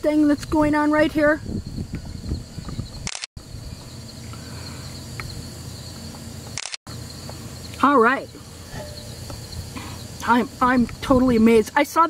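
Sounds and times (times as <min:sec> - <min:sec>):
high insect trill: 0:00.0 - 0:12.0.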